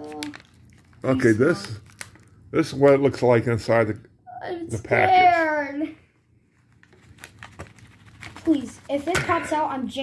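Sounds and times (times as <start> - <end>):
foil pouch crinkling: 0.0 - 2.4, 6.5 - 9.1.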